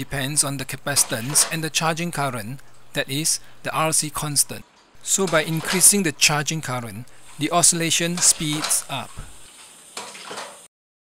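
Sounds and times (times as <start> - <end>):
tap water running into a cup: 0.9 - 1.8, 5.1 - 6.2, 7.1 - 10.7.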